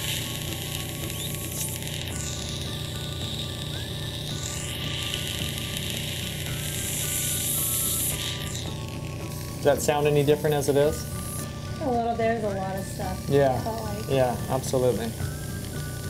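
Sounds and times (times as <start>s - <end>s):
background music with held notes: 0.0s - 16.0s
suction hissing: 0.0s - 16.0s.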